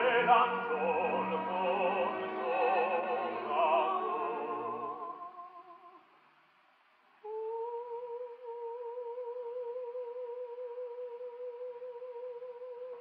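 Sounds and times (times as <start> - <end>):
soprano operatic singing: 0.0 - 6.1, 7.2 - 13.0.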